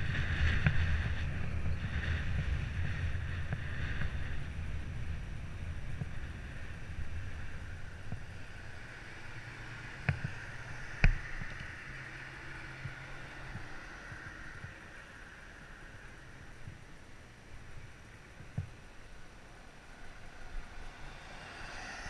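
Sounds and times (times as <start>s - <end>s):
wind and road noise: 0.0s - 22.0s.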